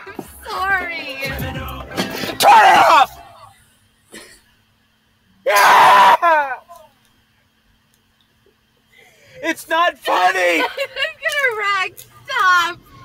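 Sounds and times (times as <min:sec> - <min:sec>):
person screaming: 0:02.4 - 0:03.3, 0:05.5 - 0:06.7.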